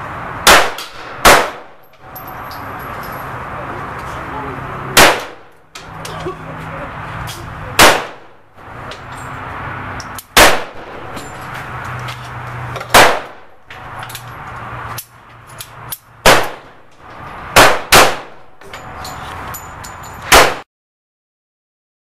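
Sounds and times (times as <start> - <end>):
pistol shots: 0.4 - 1.8, 5.0 - 5.5, 7.8 - 8.3, 10.3 - 11.2, 12.9 - 13.5, 16.2 - 16.8, 17.5 - 18.5, 20.3 - 20.6.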